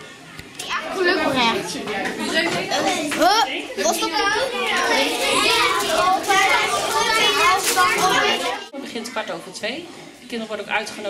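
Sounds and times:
children talking and calling out: 0:00.0 - 0:10.3.

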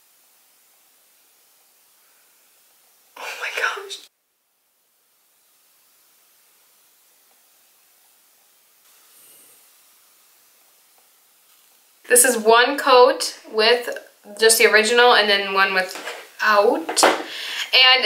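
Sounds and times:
faint room hiss: 0:00.0 - 0:18.0
woman whispering: 0:03.2 - 0:04.1.

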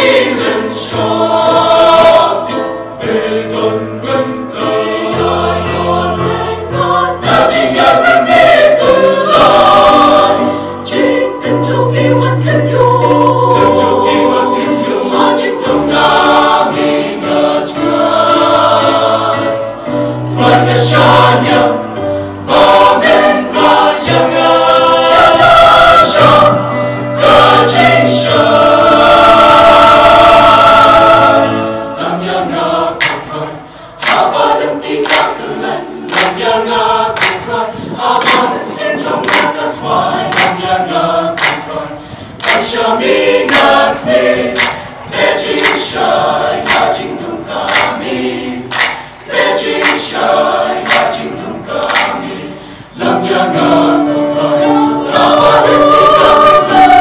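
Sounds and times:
mixed choir singing a hymn: 0:00.0 - 0:57.0.

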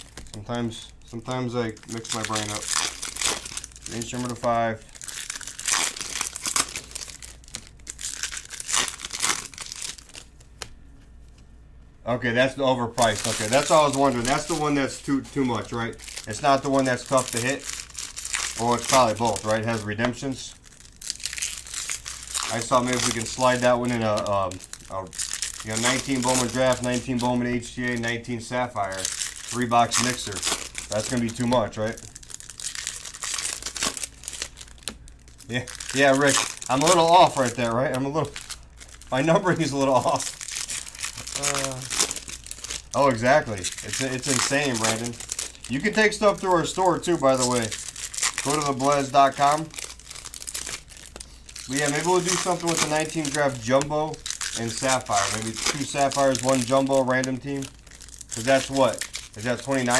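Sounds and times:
foil wrappers crinkling and tearing: 0:00.0 - 0:10.7, 0:13.0 - 0:59.9.

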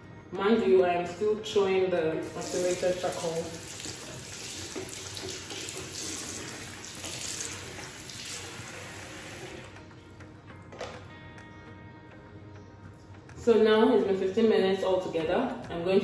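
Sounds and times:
tap running into a sink: 0:02.2 - 0:09.8.

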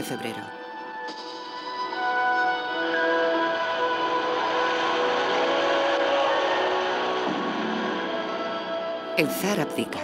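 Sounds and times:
soundtrack music with held tones: 0:00.0 - 0:10.0.

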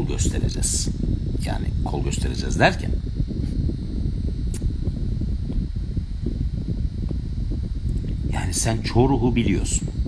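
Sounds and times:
low rumble: 0:00.0 - 0:10.0.

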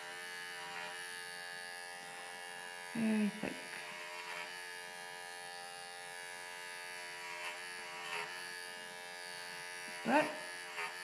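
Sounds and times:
electric hair clipper buzzing: 0:00.0 - 0:11.0.

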